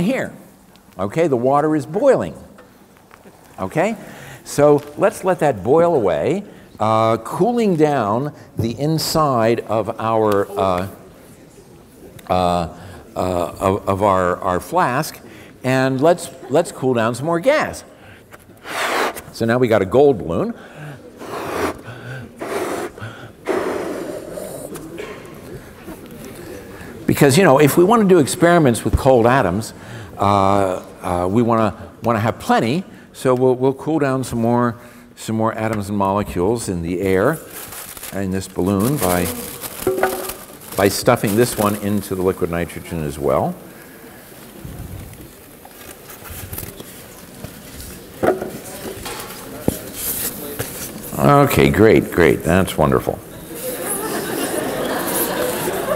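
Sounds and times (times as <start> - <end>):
quick gasping inhale: 4.0 - 4.4, 20.6 - 24.7
man blowing into balloon: 18.6 - 19.3, 21.2 - 24.8
balloon rustling in liquid nitrogen: 37.1 - 42.8.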